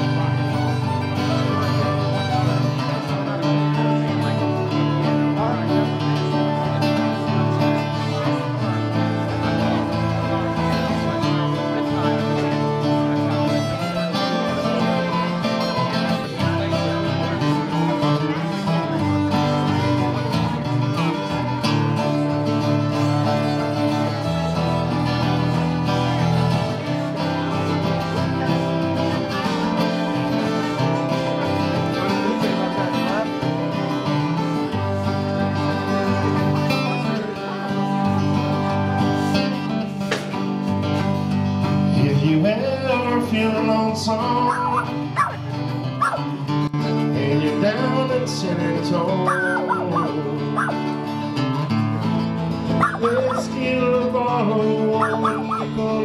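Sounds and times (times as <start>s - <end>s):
acoustic guitar strumming: 0.0s - 56.0s
fiddle melody: 0.0s - 56.0s.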